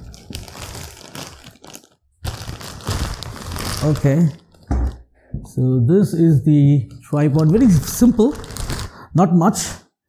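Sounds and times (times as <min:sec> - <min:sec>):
plastic packaging crinkling: 0:00.0 - 0:05.0, 0:07.0 - 0:09.0.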